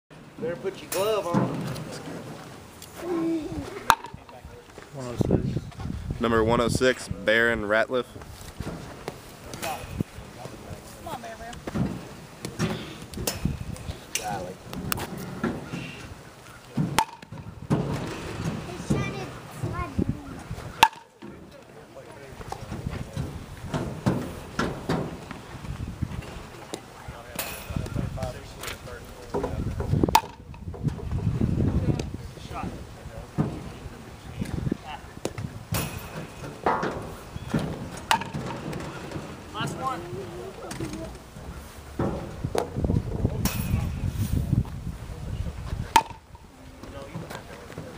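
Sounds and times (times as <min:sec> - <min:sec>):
people talking: 0:00.4 - 0:02.3, 0:03.0 - 0:08.2, 0:09.4 - 0:11.6, 0:12.6 - 0:17.2, 0:18.5 - 0:23.4, 0:26.4 - 0:30.7, 0:31.5 - 0:35.4, 0:37.4 - 0:41.2, 0:45.0 - 0:47.9
baseball bat hitting ball: 0:03.8 - 0:04.4, 0:16.8 - 0:18.1, 0:20.7 - 0:21.4, 0:30.1 - 0:30.8, 0:35.2 - 0:38.9, 0:45.9 - 0:46.4.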